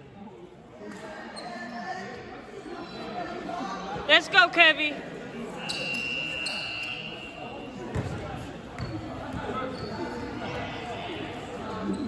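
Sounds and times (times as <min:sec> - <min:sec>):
murmur of voices: 0:00.0 - 0:12.0
basketball bouncing on hall floor: 0:07.9 - 0:10.7.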